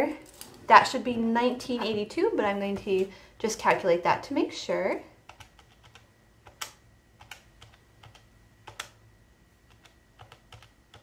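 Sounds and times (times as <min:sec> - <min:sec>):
calculator keys clicking: 0:05.3 - 0:09.0, 0:09.7 - 0:11.0.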